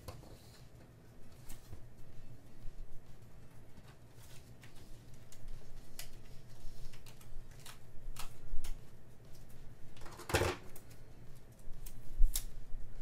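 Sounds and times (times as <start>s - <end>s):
scissors snipping paper: 4.6s - 8.8s, 11.5s - 12.5s.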